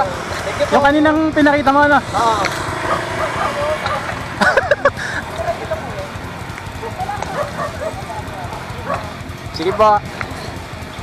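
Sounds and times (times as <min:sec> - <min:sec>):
rolling noise: 0:00.0 - 0:11.0.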